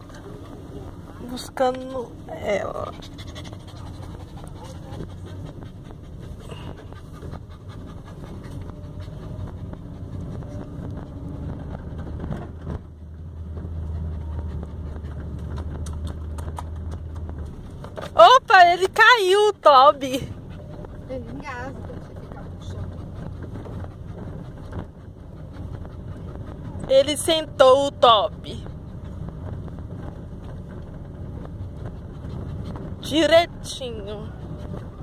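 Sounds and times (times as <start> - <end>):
car engine and road rumble: 0.0 - 35.0
dog panting: 0.0 - 35.0
woman speaking: 1.2 - 3.0, 18.2 - 20.3, 21.1 - 22.8, 26.9 - 28.6, 33.0 - 34.3.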